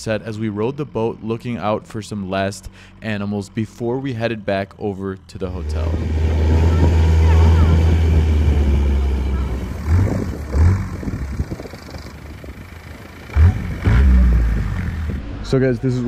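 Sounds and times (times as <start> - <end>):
boat engine droning: 0.0 - 16.0.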